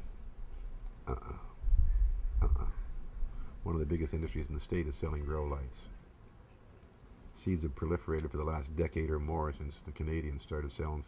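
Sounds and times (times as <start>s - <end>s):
low rumble: 1.0s - 6.0s
man saying uh: 1.1s - 1.6s, 2.4s - 2.9s.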